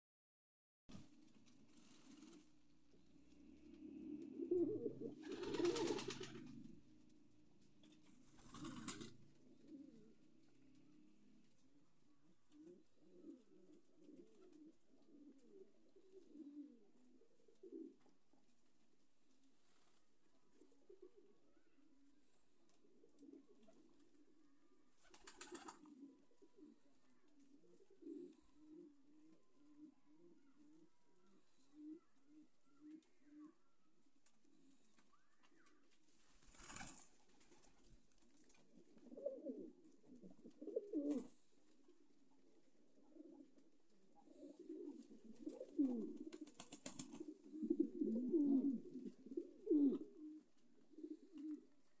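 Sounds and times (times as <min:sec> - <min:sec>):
pigeons cooing: 0:01.8 - 0:07.2, 0:07.8 - 0:18.1, 0:20.5 - 0:33.8, 0:38.4 - 0:51.9.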